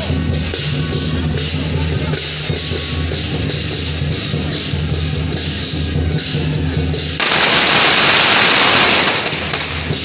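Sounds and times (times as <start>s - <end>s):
firecrackers crackling: 7.1s - 10.0s.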